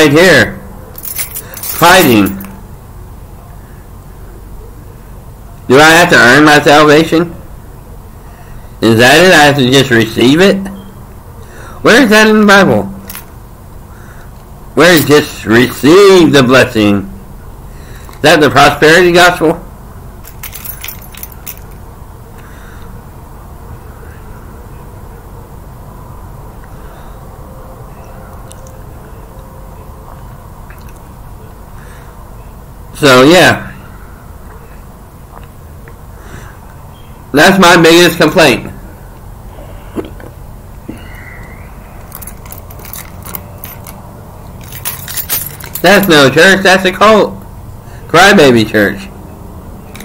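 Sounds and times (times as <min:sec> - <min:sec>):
low steady hum: 0:00.0 - 0:50.0
high-pitched clicks and jingles: 0:01.0 - 0:02.6, 0:42.0 - 0:44.0, 0:44.6 - 0:46.2
light clicks and rattles: 0:20.2 - 0:21.8, 0:42.0 - 0:46.2.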